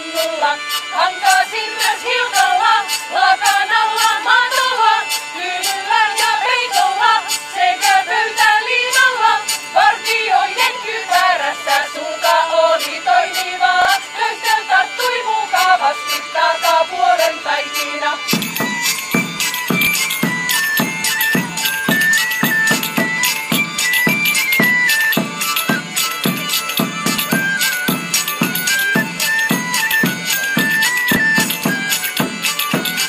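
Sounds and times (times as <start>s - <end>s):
women singing a folk song: 0.0s - 24.2s
high steady instrumental tone: 0.0s - 33.0s
hurdy-gurdy drone: 0.0s - 33.0s
hand drum and tambourine beat: 0.1s - 33.0s
heavy drum beats: 18.3s - 33.0s.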